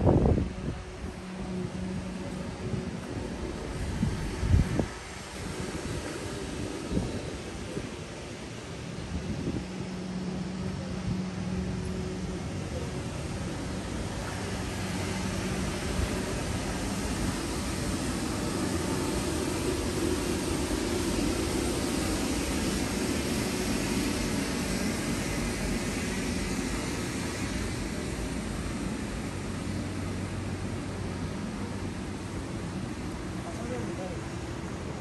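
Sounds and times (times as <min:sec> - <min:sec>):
city traffic noise: 0:00.0 - 0:35.0.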